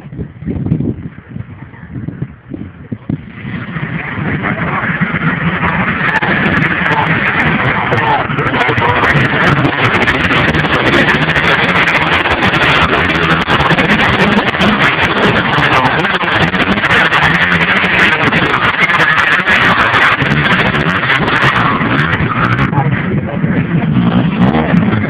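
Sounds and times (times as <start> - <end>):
dirt bike engines revving: 0.0 - 25.0.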